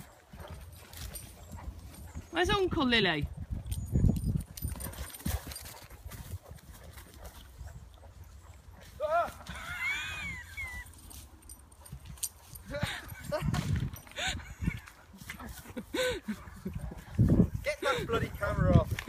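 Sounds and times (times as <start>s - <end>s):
wind rumble: 0.0s - 6.7s, 16.5s - 19.0s.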